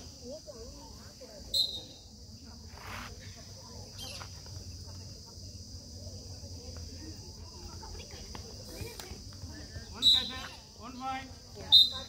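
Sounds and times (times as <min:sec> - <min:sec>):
insects chorus: 0:00.0 - 0:12.0.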